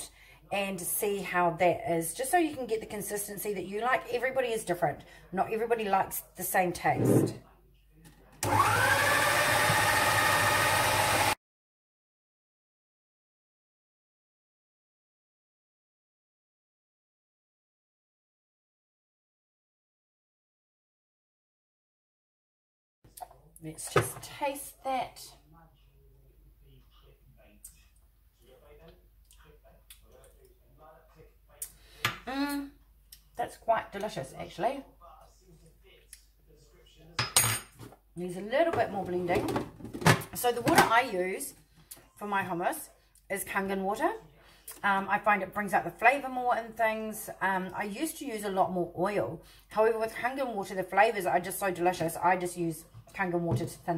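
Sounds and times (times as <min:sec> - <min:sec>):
food processor motor whining: 0:08.4 - 0:11.4.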